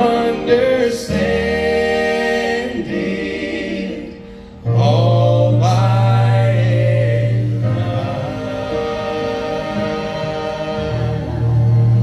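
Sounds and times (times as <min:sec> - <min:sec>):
worship band holding chords: 0:00.0 - 0:12.0.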